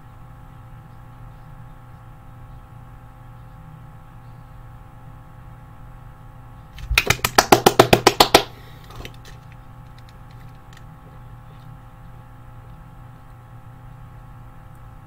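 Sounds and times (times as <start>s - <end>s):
sharp slaps: 6.8s - 9.2s.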